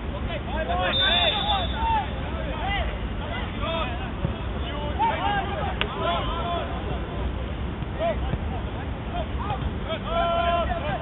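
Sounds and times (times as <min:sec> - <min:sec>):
players shouting: 0:00.5 - 0:07.2, 0:07.8 - 0:11.0.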